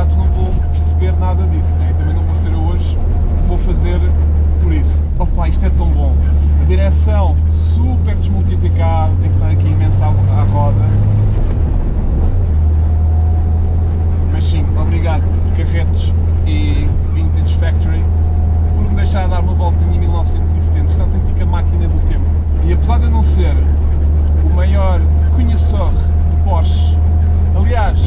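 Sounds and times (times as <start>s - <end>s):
car engine droning: 0.0s - 28.0s.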